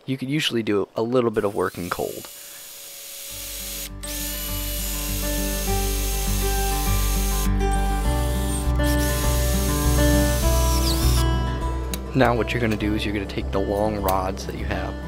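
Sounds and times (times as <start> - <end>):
drill whining through steel: 1.4 - 11.2
background music: 3.1 - 15.0.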